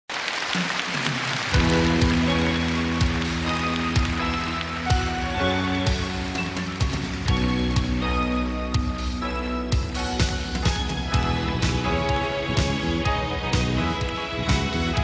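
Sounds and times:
audience applause: 0.1s - 8.3s, 10.6s - 15.0s
piano chords: 1.5s - 15.0s.

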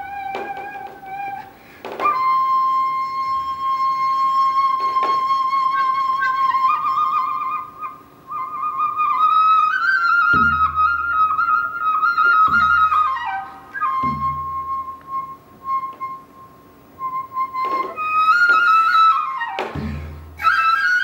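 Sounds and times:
bamboo flute melody: 0.0s - 21.0s
hourglass drum strokes: 10.3s - 11.0s, 12.1s - 13.3s, 19.6s - 20.5s.

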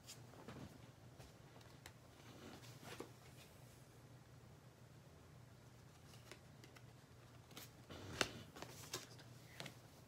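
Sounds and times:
card rustling: 5.8s - 9.8s.

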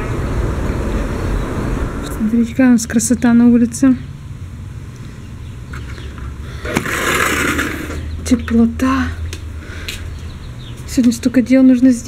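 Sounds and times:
low background rumble: 0.0s - 6.6s
sliding door rolling along track: 6.6s - 8.2s.

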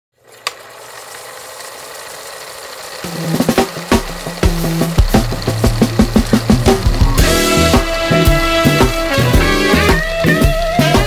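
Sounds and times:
film projector whirring: 0.2s - 11.0s.

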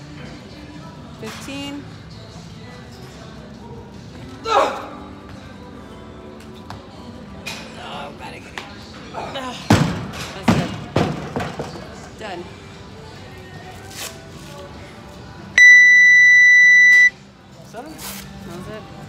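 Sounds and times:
background music: 0.0s - 19.0s
long electronic timer beep: 15.6s - 17.1s.

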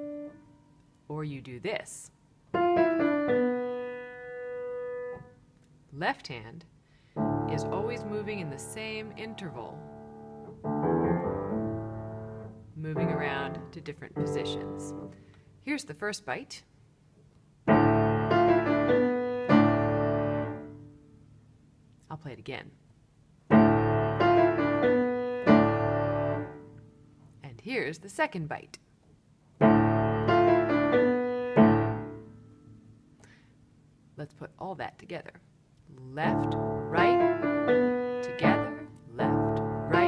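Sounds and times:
piano notes: 0.0s - 0.6s, 2.5s - 5.4s, 7.2s - 15.2s, 17.6s - 21.0s, 23.5s - 26.9s, 29.6s - 33.2s, 36.3s - 40.0s.

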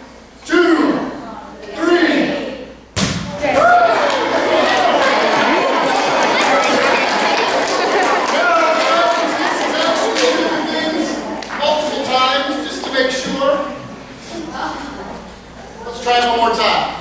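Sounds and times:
basketball thud on gym floor: 3.0s - 3.4s
children calling out and chattering: 3.4s - 16.0s.

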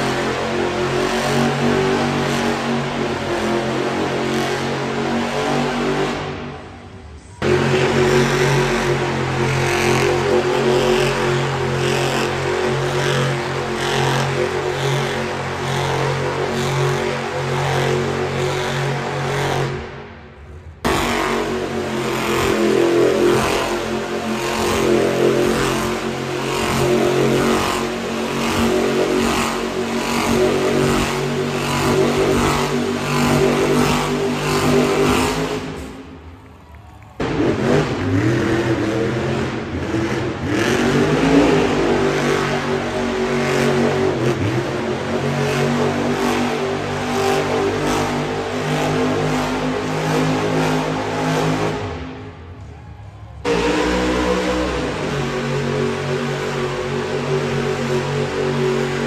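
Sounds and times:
truck engines revving: 0.0s - 59.0s.

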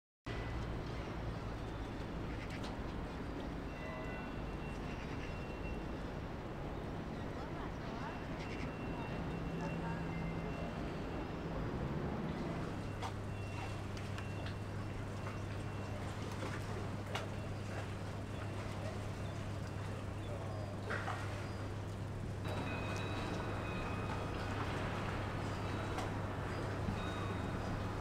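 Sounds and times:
boat engine humming: 0.3s - 28.0s.

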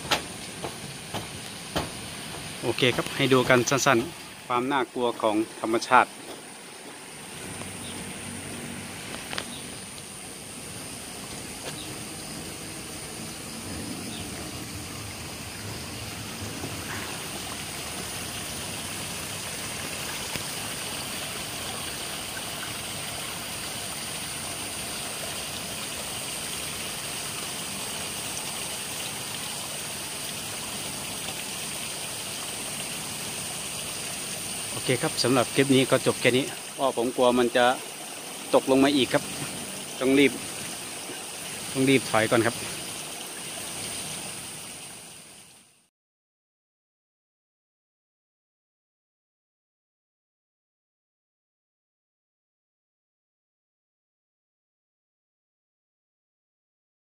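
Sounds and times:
thin high hiss: 0.0s - 15.7s
running water: 0.0s - 45.9s.

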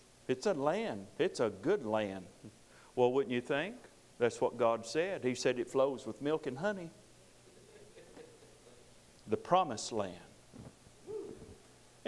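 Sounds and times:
man speaking: 3.0s - 7.0s, 9.3s - 10.3s.

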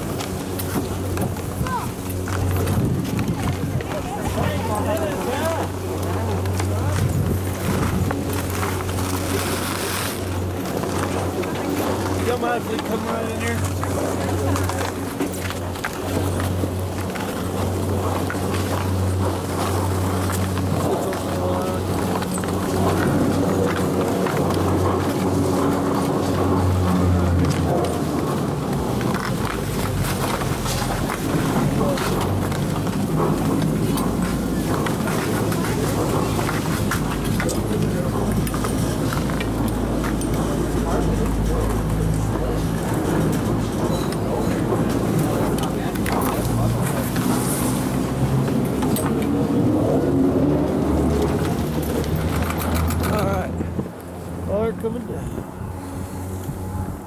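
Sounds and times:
chairlift machine hum: 0.0s - 57.0s.

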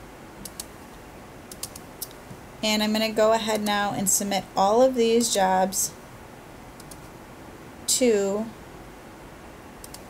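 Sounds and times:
computer mouse clicking: 0.4s - 0.7s, 1.5s - 2.2s, 6.8s - 7.1s, 9.8s - 10.0s.

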